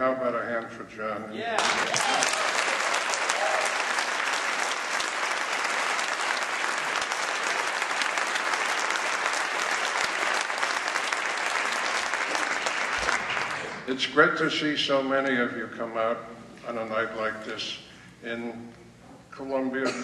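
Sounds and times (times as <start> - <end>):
audience applauding: 1.6 - 13.9.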